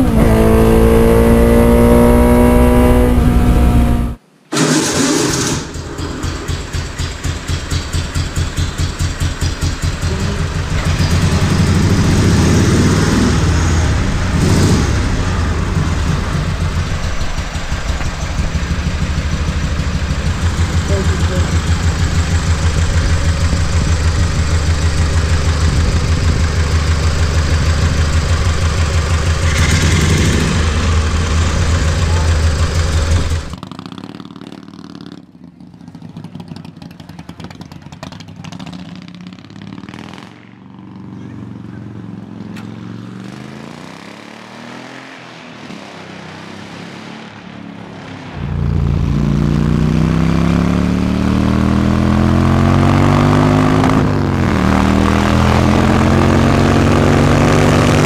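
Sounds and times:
v-twin engine running and revving: 6.5s - 45.1s, 48.4s - 58.0s.

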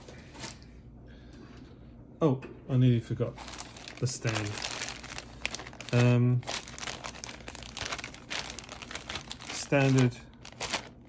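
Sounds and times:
plastic bag crinkling: 3.3s - 11.0s.

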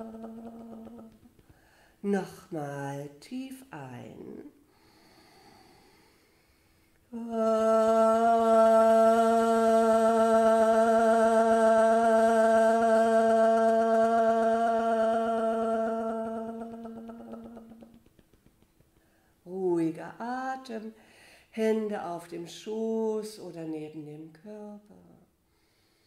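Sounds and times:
woman toning long vowel: 0.0s - 1.3s, 7.1s - 18.0s
faint in-breath: 1.5s - 2.0s, 4.7s - 7.0s, 19.0s - 19.4s, 21.0s - 21.5s, 25.5s - 26.0s.

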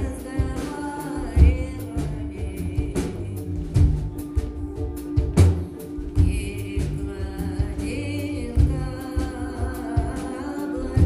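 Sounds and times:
low tones and bass notes: 0.0s - 11.0s.

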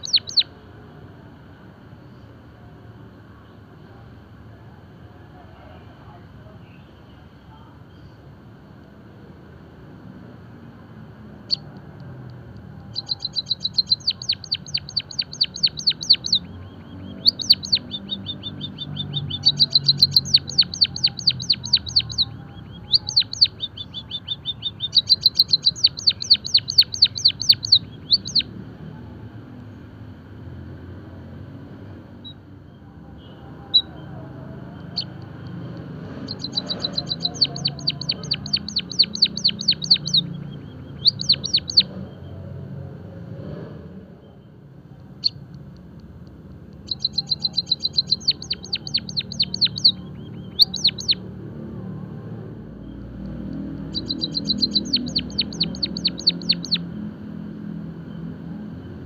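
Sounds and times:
bird singing rapid high clicks: 0.0s - 0.5s, 11.4s - 28.5s, 34.8s - 42.1s, 45.0s - 51.2s, 52.7s - 57.0s.

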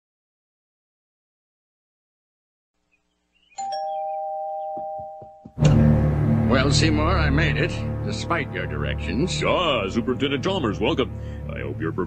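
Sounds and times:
two-tone doorbell chime: 3.6s - 5.6s.

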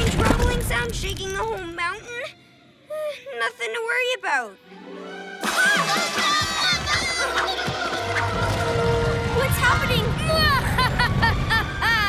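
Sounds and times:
cartoon soundtrack music: 4.6s - 12.0s.

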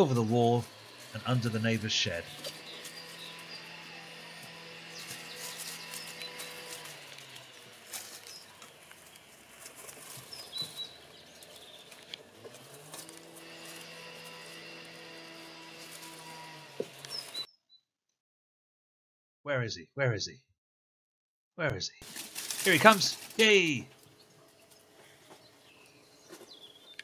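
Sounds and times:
bird chirps: 10.2s - 12.0s, 24.0s - 27.0s.

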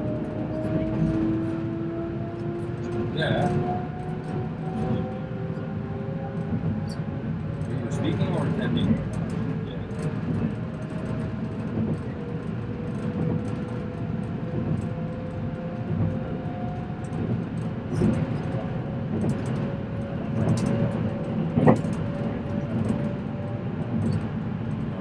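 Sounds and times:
train wheels rumbling on rail: 0.0s - 25.0s.

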